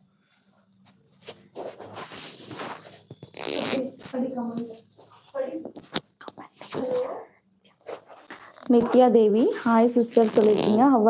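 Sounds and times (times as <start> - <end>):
microphone handling rustle: 1.1 - 6.1.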